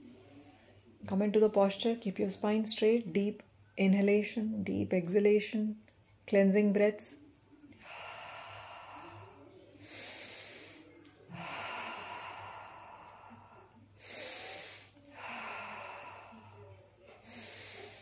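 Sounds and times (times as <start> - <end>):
woman breathing deeply: 7.8 - 18.0.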